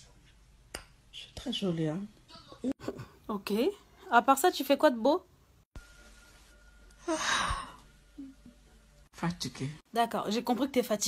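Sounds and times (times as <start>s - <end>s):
woman yawning: 7.0s - 8.3s.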